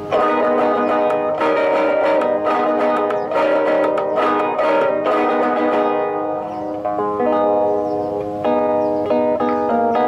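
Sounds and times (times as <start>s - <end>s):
solo classical guitar: 0.0s - 10.0s.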